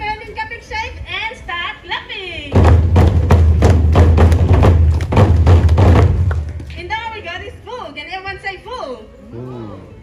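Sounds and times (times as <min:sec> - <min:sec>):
large wooden drums booming: 0:02.5 - 0:06.6.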